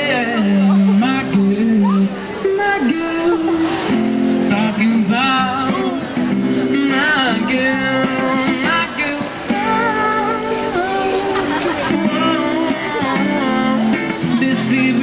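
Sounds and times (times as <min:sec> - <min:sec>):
acoustic guitar chords: 0:00.0 - 0:15.0
man singing into a microphone: 0:00.0 - 0:15.0.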